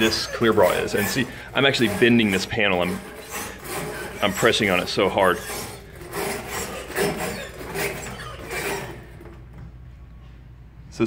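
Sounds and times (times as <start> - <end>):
wire brush scraping film: 0.0 - 9.6.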